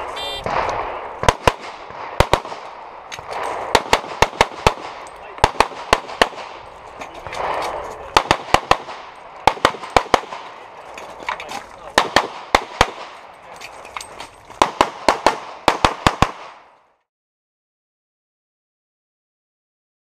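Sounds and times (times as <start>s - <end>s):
pistol shots: 0.0s - 6.6s, 7.2s - 10.6s, 11.9s - 13.2s, 14.6s - 16.7s.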